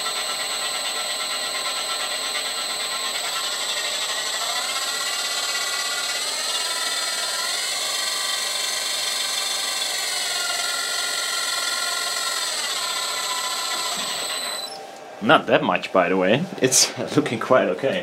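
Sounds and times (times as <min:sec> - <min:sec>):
spindle motor high whine: 0:00.0 - 0:15.5.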